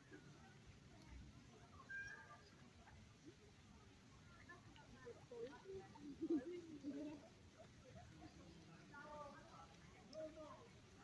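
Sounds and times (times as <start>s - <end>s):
faint high-pitched call: 1.8s - 2.5s.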